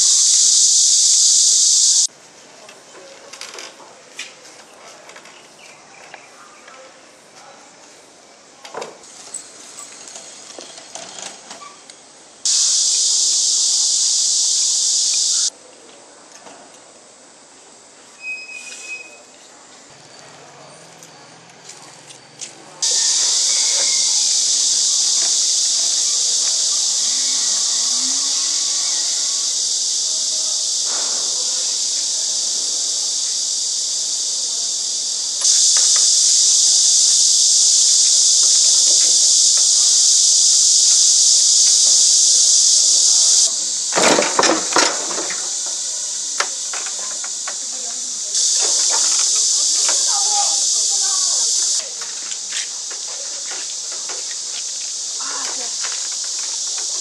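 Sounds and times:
high-pitched hiss: 0:00.0 - 0:02.1, 0:09.0 - 0:15.6, 0:22.7 - 0:57.0.

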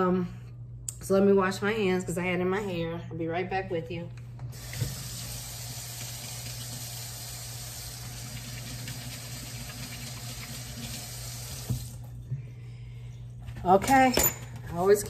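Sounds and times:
water running from tap: 0:04.5 - 0:12.1.

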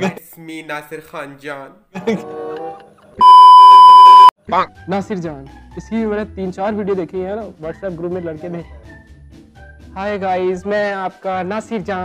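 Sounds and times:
high-pitched test tone beep: 0:03.2 - 0:04.3.

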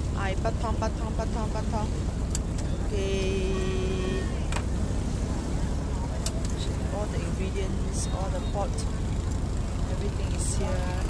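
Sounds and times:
boat engine rumble: 0:00.0 - 0:11.0
held pitched tone: 0:02.7 - 0:04.5.

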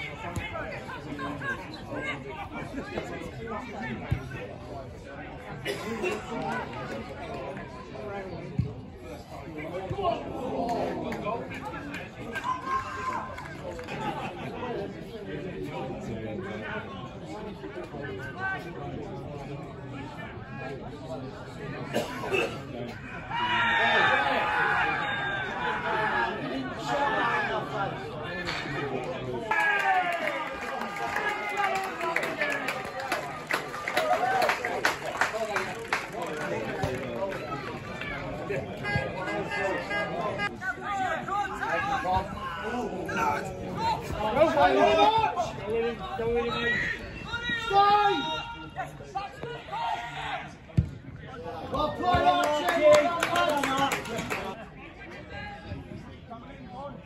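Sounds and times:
players and spectators shouting: 0:00.0 - 0:05.5, 0:09.0 - 0:15.4, 0:22.8 - 0:54.6
indistinct chatter of voices: 0:00.0 - 0:57.0.

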